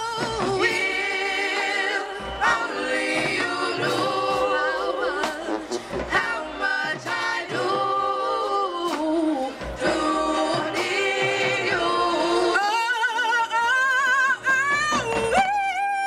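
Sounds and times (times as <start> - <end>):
group of voices singing: 0.0 - 15.6.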